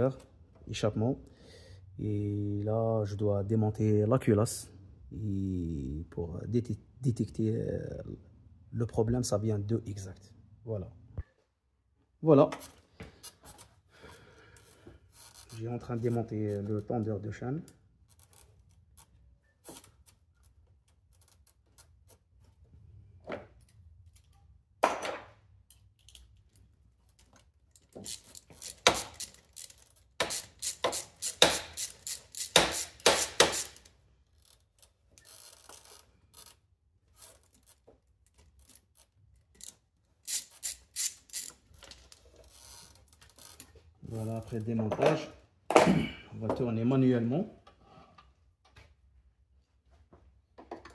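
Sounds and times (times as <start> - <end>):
ratchet wrench clicking: 28.0 - 34.6, 35.2 - 36.6, 38.6 - 41.9.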